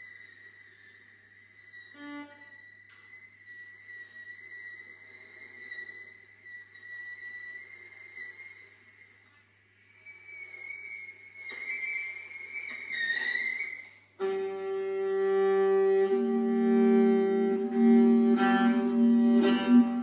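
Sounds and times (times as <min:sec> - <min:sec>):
solo viola bowed: 0:01.6 - 0:08.8, 0:10.3 - 0:20.0.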